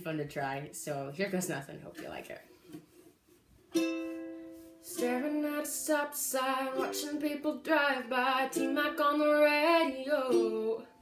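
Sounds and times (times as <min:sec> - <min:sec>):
ukulele chord strummed: 0:03.7 - 0:11.0.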